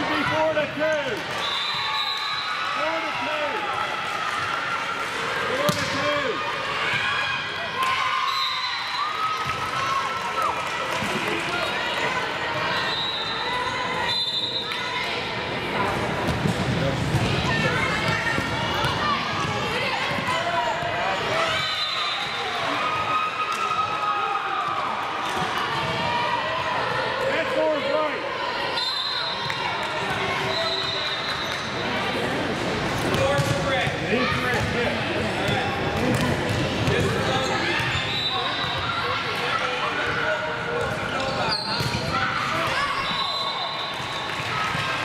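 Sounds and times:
chatter of many voices: 0.0s - 1.4s, 9.2s - 45.0s.

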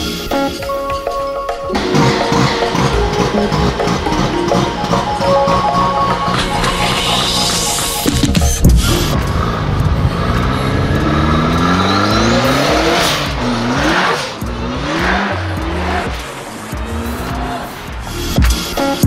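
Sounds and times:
engine accelerating and shifting: 1.7s - 19.0s.

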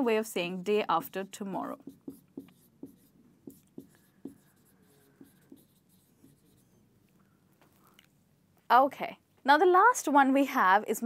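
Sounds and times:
marker pen writing on whiteboard: 0.8s - 6.8s.

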